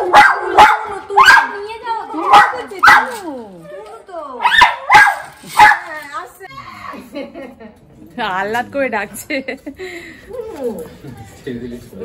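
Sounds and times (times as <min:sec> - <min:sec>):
small dog barking: 0:00.0 - 0:01.6, 0:02.2 - 0:03.2, 0:04.4 - 0:05.9.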